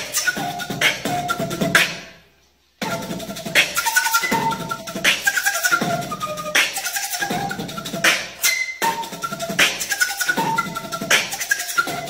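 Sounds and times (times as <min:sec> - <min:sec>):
beatboxing: 0:00.0 - 0:12.0
recorder notes: 0:00.0 - 0:12.0.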